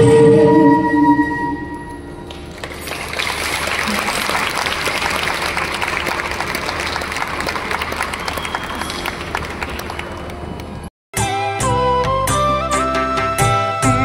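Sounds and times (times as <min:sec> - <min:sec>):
audience applauding: 0:02.3 - 0:10.9.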